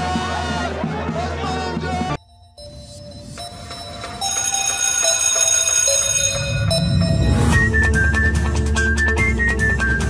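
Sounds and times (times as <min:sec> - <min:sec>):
bell-like chiming tones: 0:02.2 - 0:07.6.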